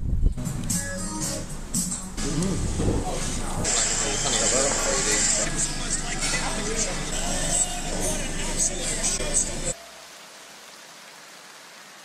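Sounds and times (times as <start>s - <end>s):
steady hiss: 1.5s - 12.0s.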